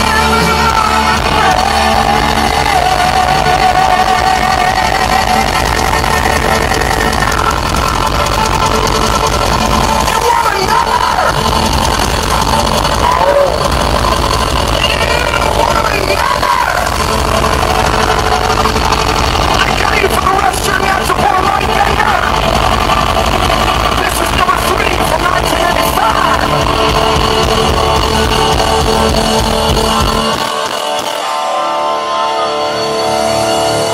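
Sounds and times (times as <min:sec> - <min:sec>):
electric guitar: 0:00.0 - 0:33.9
live band playing amplified music: 0:00.0 - 0:33.9.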